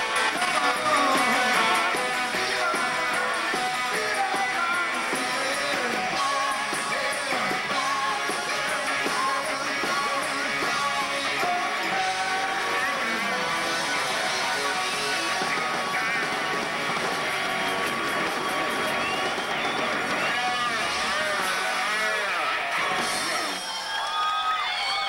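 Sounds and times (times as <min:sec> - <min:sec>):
electric guitar: 0:00.0 - 0:25.0
rock band playing: 0:00.0 - 0:25.0.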